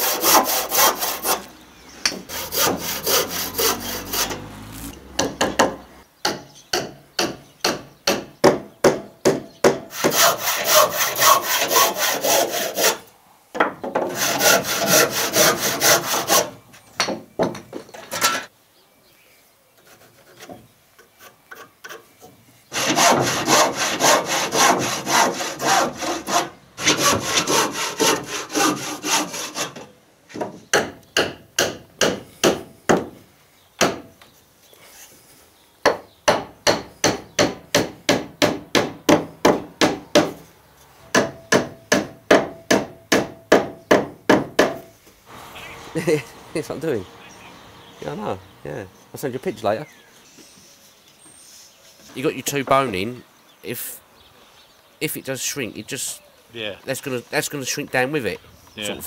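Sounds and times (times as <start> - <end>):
handsaw cutting wood: 0.0 - 1.5, 2.3 - 5.4, 9.9 - 13.1, 14.1 - 16.6, 22.7 - 29.9.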